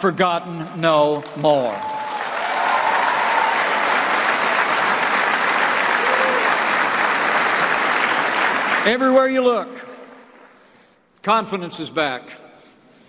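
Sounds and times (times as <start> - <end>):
audience applauding: 1.1 - 9.0.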